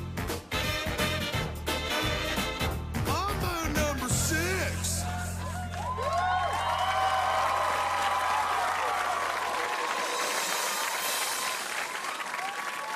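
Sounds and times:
audience cheering and applauding: 4.7 - 12.9.

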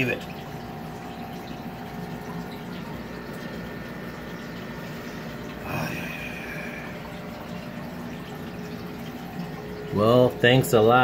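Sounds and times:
aquarium water bubbling: 0.0 - 11.0
pump humming: 0.0 - 11.0.

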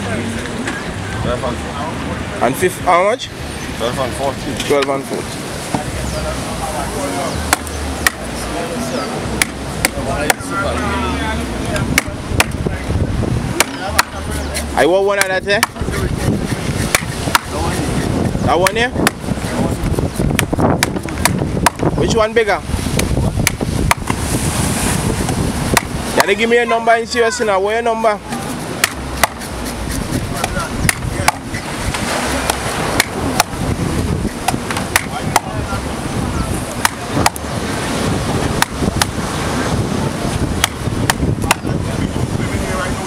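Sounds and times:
knife chopping fish on wood: 7.5 - 8.2, 9.4 - 10.4, 16.4 - 17.6, 19.0 - 19.2, 20.3 - 21.8, 23.0 - 24.2, 28.8 - 33.6, 34.4 - 35.5, 36.8 - 37.4, 38.6 - 39.2, 40.6 - 41.7
stick knocking on knife blade: 16.5 - 17.5, 28.8 - 31.5, 32.5 - 33.6, 34.4 - 35.5.

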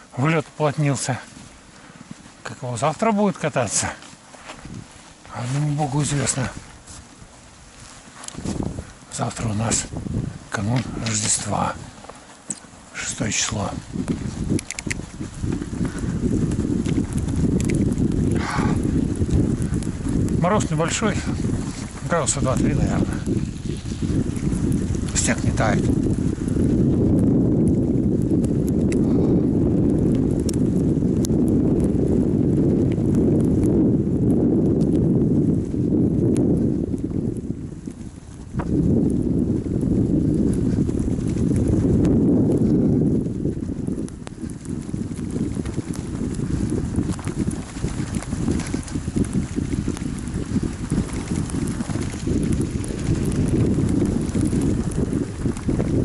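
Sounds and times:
bicycle tyres crunching snow: 0.0 - 56.0
wind rumble on microphone: 0.0 - 56.0.

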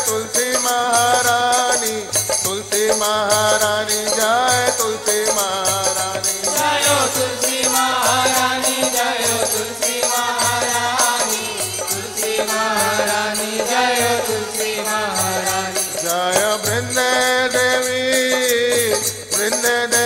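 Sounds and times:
man singing devotional chant: 0.0 - 20.0
percussion beat: 0.0 - 20.0.

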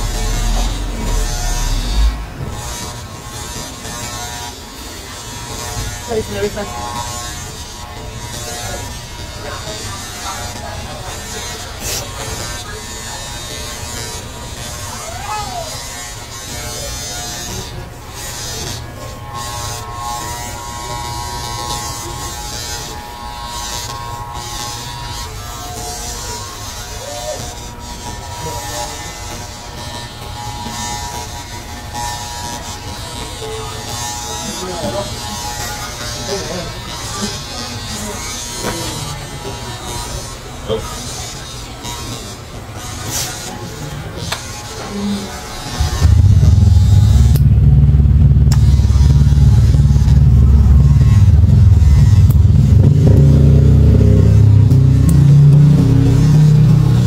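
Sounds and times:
electric hair clippers buzzing: 0.0 - 57.0.

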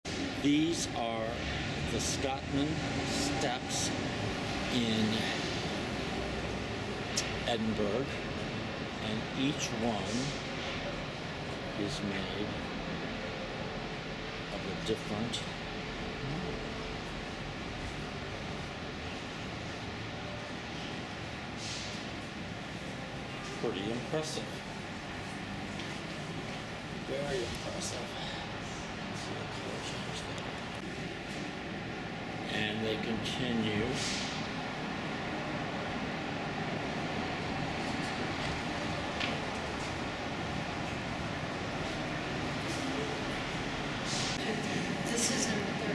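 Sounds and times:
distant city traffic hum: 0.0 - 45.9
low rumble and hiss: 0.1 - 45.9.

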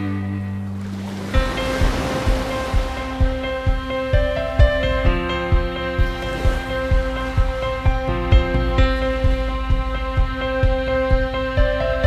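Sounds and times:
music with low steady beat: 0.0 - 12.0
surf breaking: 0.0 - 12.0.

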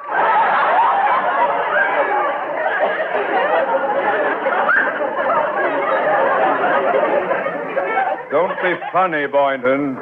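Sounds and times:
studio audience laughing: 0.0 - 9.6.

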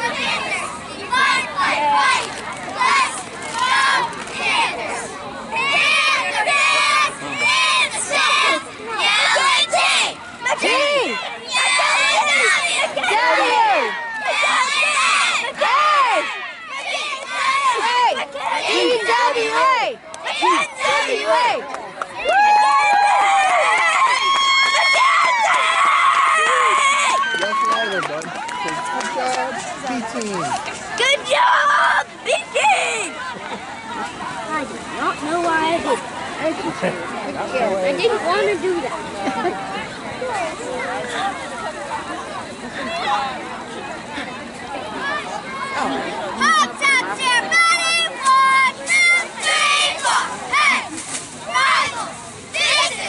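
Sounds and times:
girls chanting a cheer: 0.0 - 21.7, 45.0 - 53.0
children and adults shouting: 0.0 - 29.2, 30.3 - 34.4, 44.8 - 53.0.

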